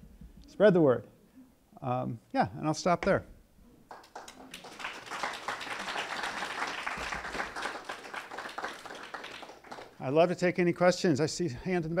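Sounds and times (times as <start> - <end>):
audience applauding: 3.9 - 10.0.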